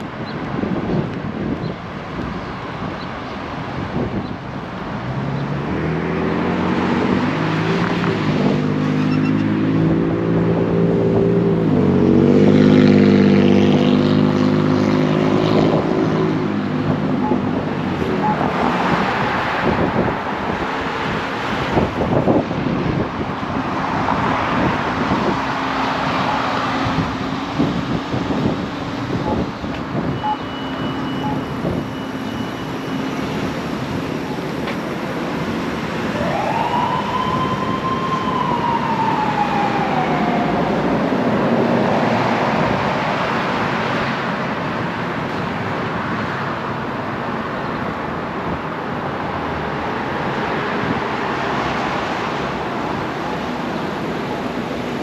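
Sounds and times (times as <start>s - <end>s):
cars passing: 0.0s - 55.0s
heavy vehicle engine: 0.0s - 55.0s.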